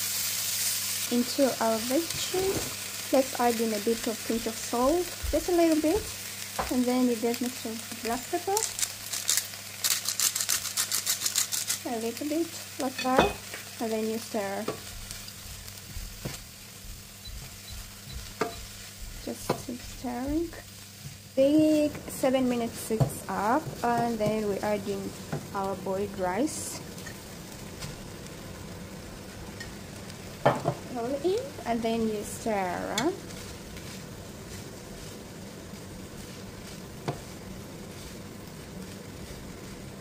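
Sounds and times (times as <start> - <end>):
vegetables sizzling in oil: 0.0 - 40.0
pepper mill grinding: 8.1 - 13.7.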